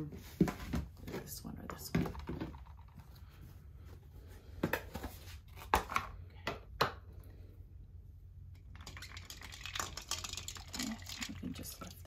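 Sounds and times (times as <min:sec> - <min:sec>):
ice cubes clinking in water: 0:08.7 - 0:12.0.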